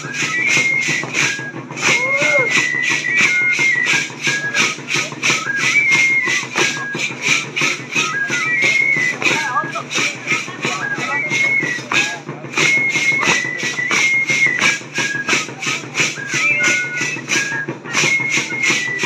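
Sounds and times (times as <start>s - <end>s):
drum beating steadily: 0.0s - 19.0s
high flute melody: 0.0s - 19.0s.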